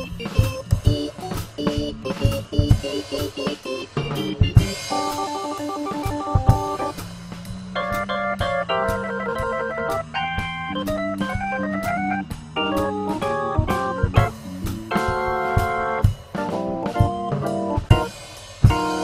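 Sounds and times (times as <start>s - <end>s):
drum kit keeping time: 0.0s - 19.0s
portable organ playing chords: 0.0s - 19.0s.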